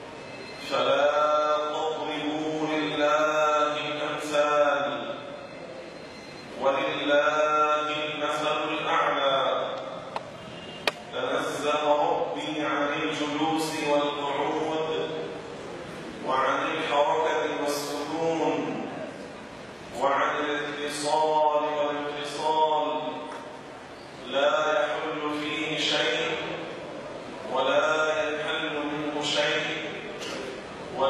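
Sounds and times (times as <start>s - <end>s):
man chanting into a microphone: 0.6s - 5.3s, 6.6s - 10.0s, 11.1s - 15.4s, 16.2s - 19.0s, 19.9s - 23.5s, 24.2s - 26.7s, 27.5s - 30.2s.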